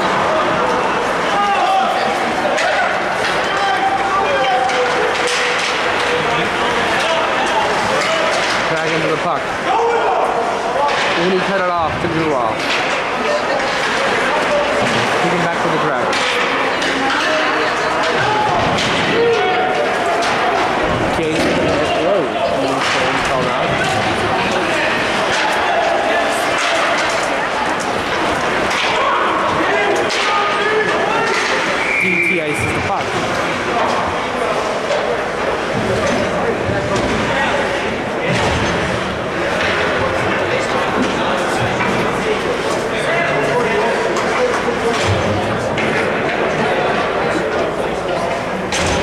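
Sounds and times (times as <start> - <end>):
crowd chattering: 0.0 - 49.0
hockey sticks and puck clacking: 0.0 - 49.0
referee whistle: 31.8 - 32.8.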